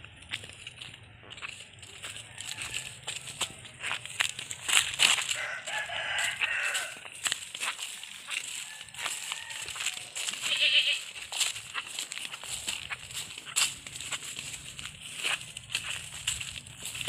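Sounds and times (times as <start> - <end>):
brush rustling underfoot: 0.0 - 17.0
footsteps of slippers on dirt: 0.0 - 17.0
farm animal calling: 1.3 - 17.0.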